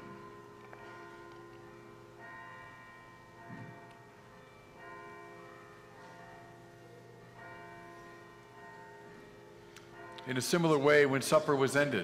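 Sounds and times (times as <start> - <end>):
faint bell ringing: 0.0 - 12.0.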